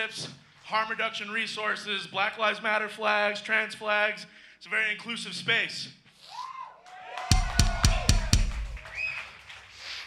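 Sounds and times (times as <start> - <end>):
drum kit hits with kick drum: 7.3 - 8.8.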